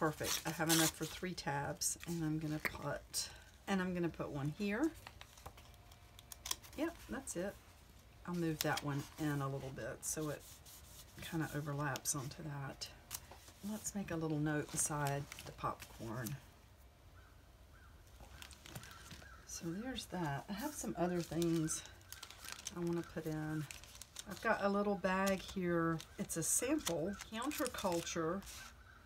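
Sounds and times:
paper rustling: 4.9s - 7.1s, 13.1s - 16.4s, 18.1s - 19.4s, 20.5s - 28.9s.

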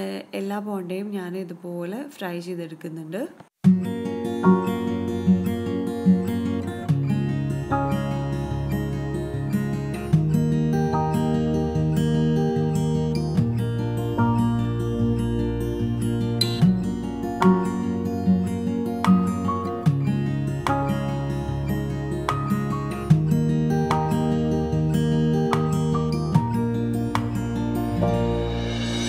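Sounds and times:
plucked acoustic guitar tune: 3.6s - 29.0s.

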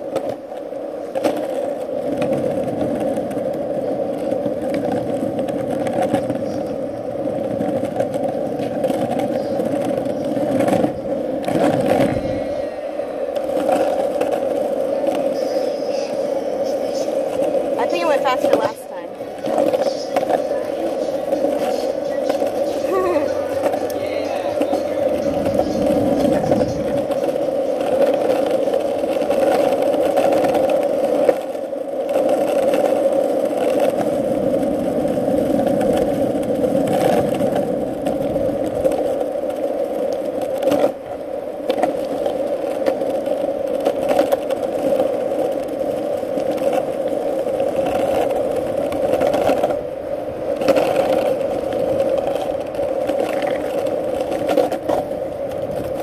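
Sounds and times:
skateboard wheels rolling on asphalt: 0.0s - 56.0s
wheels clicking over cracks: 0.0s - 56.0s.

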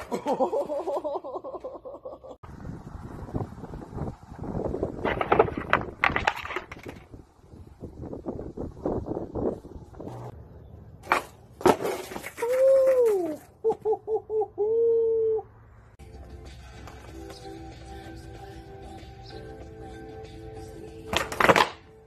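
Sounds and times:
skateboard rolling on concrete: 2.5s - 10.4s, 11.0s - 13.5s, 16.0s - 22.0s.

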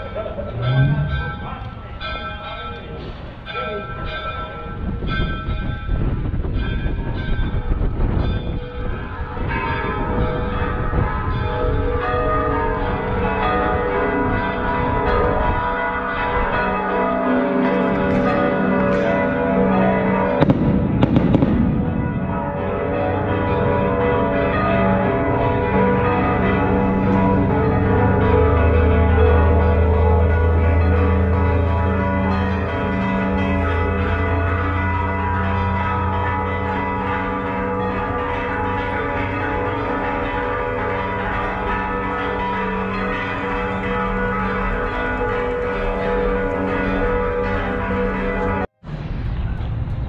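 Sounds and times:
church bells pealing: 0.0s - 48.7s
low street rumble: 0.0s - 50.0s
rush of noise: 48.8s - 50.0s.

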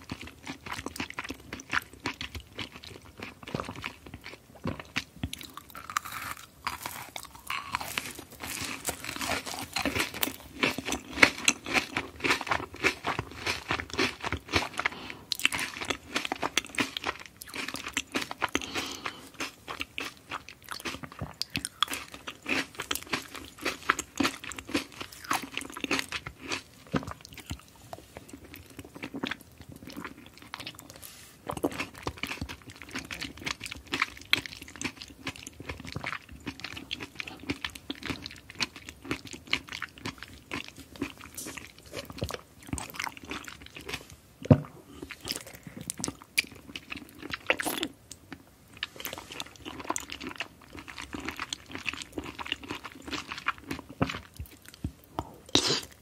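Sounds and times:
chewing gummy candy: 0.0s - 56.0s.

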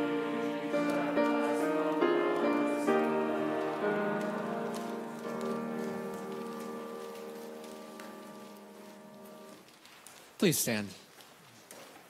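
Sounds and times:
church organ chord: 0.0s - 9.6s.

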